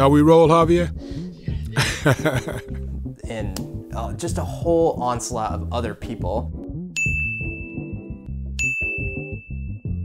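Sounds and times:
background music with bass line: 0.0 - 10.0
ding chimes: 7.0 - 8.0, 8.6 - 10.0.

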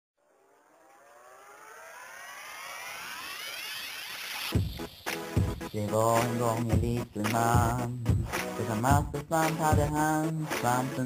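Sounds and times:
electronic riser gliding upward: 0.2 - 6.6.

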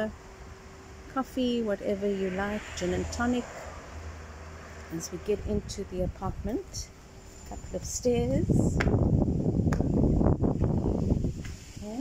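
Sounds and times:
wind buffeting microphone: 1.5 - 12.0.

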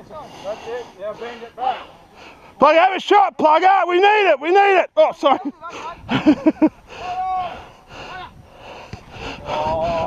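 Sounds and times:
man shouting: 2.6 - 6.0, 7.0 - 8.3, 9.4 - 10.0.

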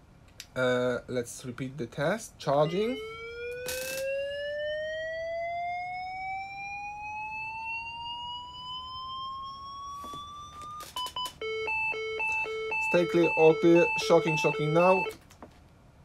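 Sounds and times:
defibrillator charging whine: 2.6 - 15.2
defibrillator beeps: 9.4 - 15.2.

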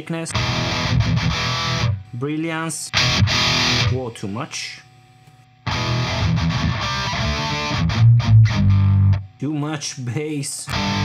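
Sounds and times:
distorted electric guitar: 0.2 - 2.2, 2.8 - 4.2, 5.6 - 9.4, 10.7 - 11.0.

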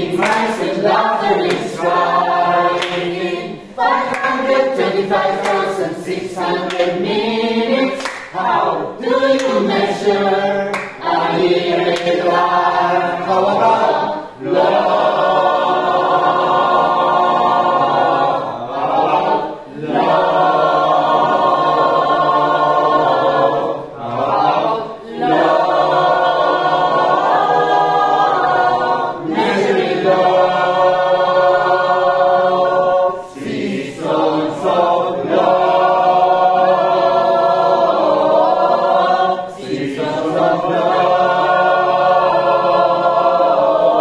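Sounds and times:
mixed choir singing a cappella: 0.0 - 44.0.

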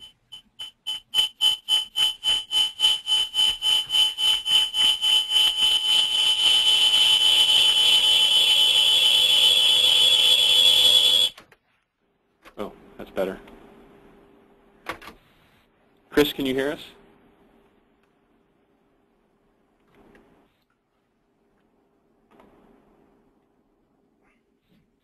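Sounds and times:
audio feedback howl: 0.0 - 11.4.

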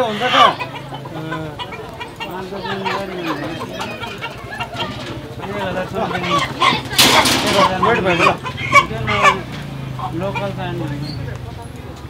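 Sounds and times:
chickens clucking: 0.0 - 12.0
people's voices: 0.0 - 12.0.

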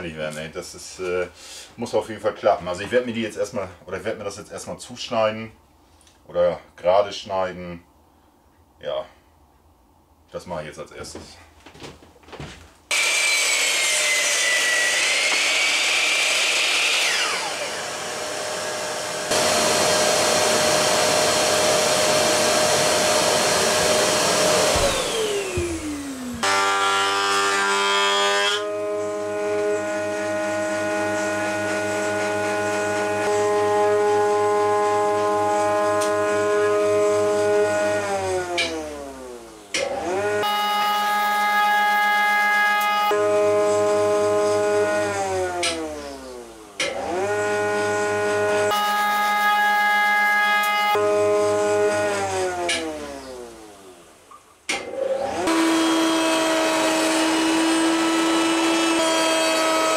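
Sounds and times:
mitre saw cutting wood: 12.9 - 53.9, 54.7 - 59.9
thickness planer whining: 12.9 - 59.9.

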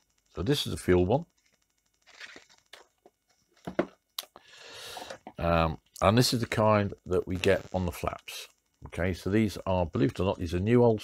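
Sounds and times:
rustling: 1.3 - 3.7.

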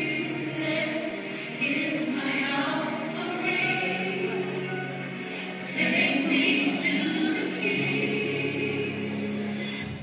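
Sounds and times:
choir singing gospel song: 0.0 - 10.0.

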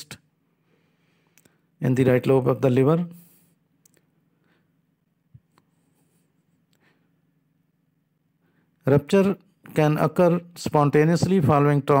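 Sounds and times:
faint low room hum: 0.0 - 12.0
narrator speaking: 1.8 - 3.3, 8.8 - 12.0.

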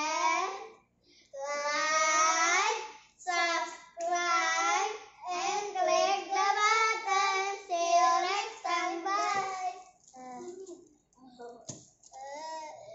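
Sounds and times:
young children singing: 0.0 - 0.8, 1.4 - 10.8.

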